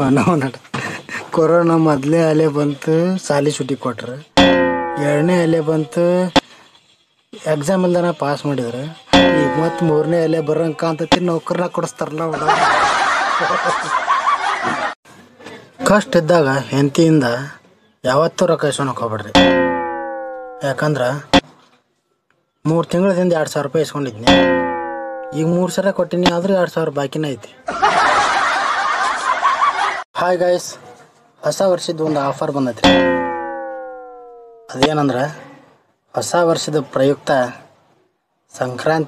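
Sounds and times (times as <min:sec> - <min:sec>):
person speaking: 0:04.4 - 0:06.4, 0:09.2 - 0:11.3, 0:24.3 - 0:26.4
loud laughter: 0:12.3 - 0:15.0, 0:27.7 - 0:30.0.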